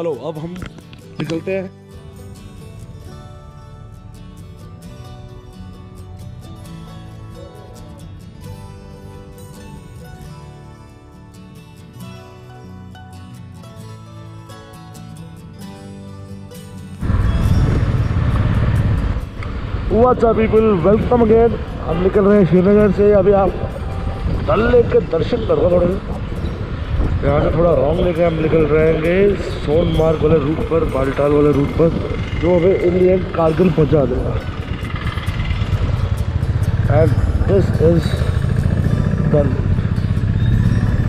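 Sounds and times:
wind rush on microphone: 0:17.0 - 0:40.2
motorcycle engine rumble: 0:17.0 - 0:41.0.

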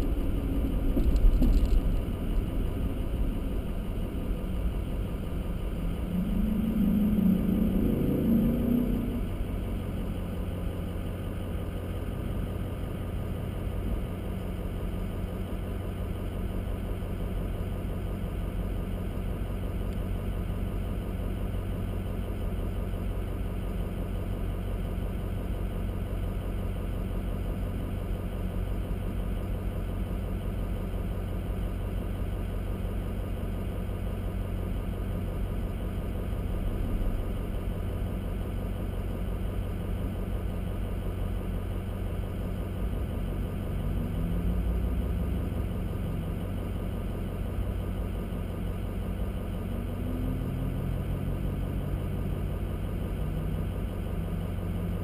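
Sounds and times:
vehicle engine idling: 0:00.0 - 0:55.0.

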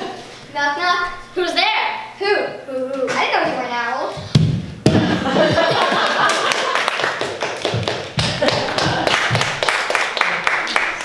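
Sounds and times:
audience clapping: 0:05.5 - 0:11.0
footsteps running on stage: 0:07.0 - 0:09.8.

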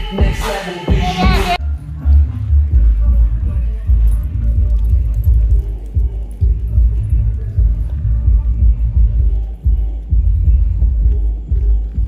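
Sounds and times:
muffled pulsing bass music: 0:00.0 - 0:12.0.

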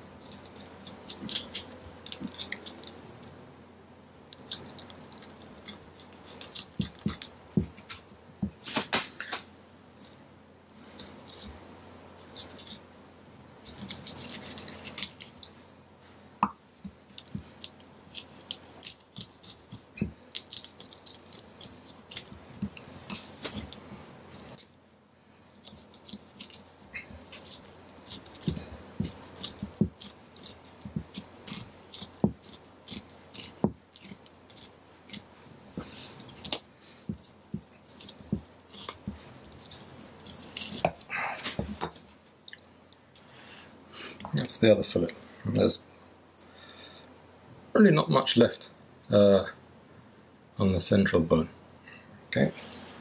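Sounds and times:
knife scraping along fish bones: 0:00.2 - 0:03.2, 0:04.4 - 0:08.0, 0:12.2 - 0:12.8, 0:13.6 - 0:15.5, 0:17.1 - 0:24.6, 0:25.4 - 0:41.1.

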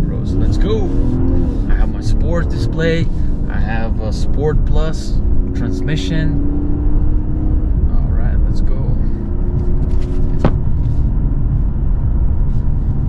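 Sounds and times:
car engine pulling: 0:00.0 - 0:13.0
road rumble: 0:00.0 - 0:13.0.

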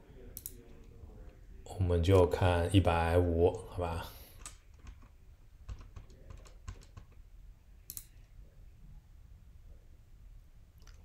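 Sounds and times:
keyboard keys clicking: 0:04.4 - 0:05.1, 0:05.7 - 0:07.2.

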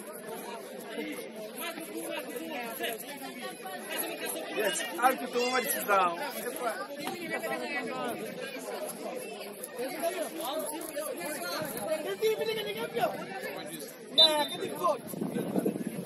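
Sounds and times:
indistinct chatter of voices: 0:00.0 - 0:16.0.

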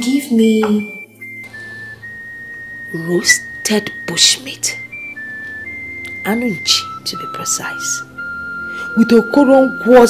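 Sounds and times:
high whistle-like film music note: 0:00.6 - 0:10.0.

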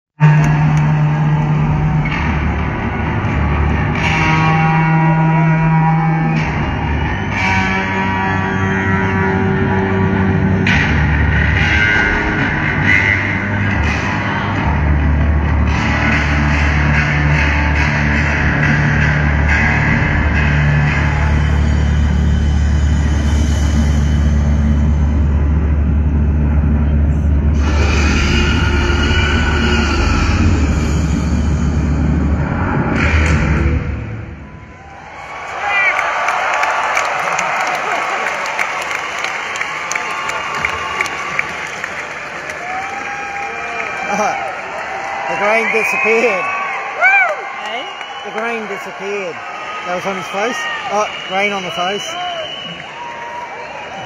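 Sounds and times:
crowd cheering and whistling: 0:00.2 - 0:14.2, 0:34.1 - 0:54.0
distorted bass notes: 0:00.2 - 0:34.5
heavy rock music: 0:08.3 - 0:27.8.

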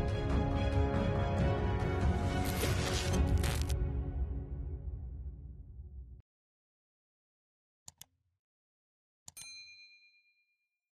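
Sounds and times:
notification bell ding: 0:09.3 - 0:10.8.

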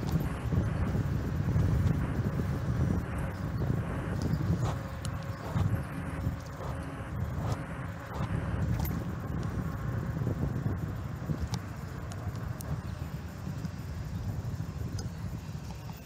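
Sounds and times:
faint clicks and rattles: 0:00.0 - 0:09.8
bicycle tyres on asphalt: 0:00.0 - 0:16.0
wind buffeting microphone: 0:00.0 - 0:16.0.

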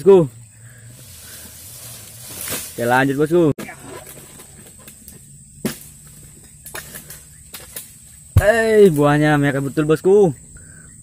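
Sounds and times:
sickle scraping and ticking: 0:00.8 - 0:10.0.

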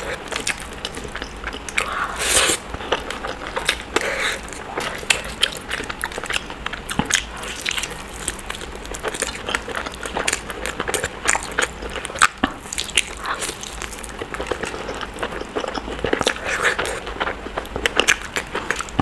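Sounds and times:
person chewing food: 0:00.0 - 0:19.0.

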